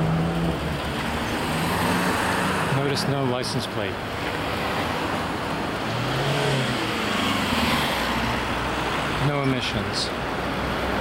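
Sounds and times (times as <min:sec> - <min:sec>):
car engine passing: 0:00.0 - 0:03.3, 0:04.0 - 0:09.3
road traffic noise: 0:00.0 - 0:11.0.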